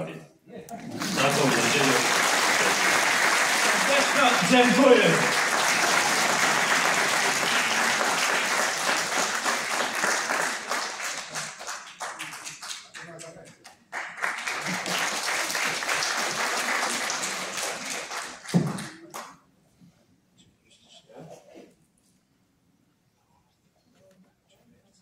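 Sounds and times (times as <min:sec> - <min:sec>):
audience applauding: 0:00.8 - 0:19.4.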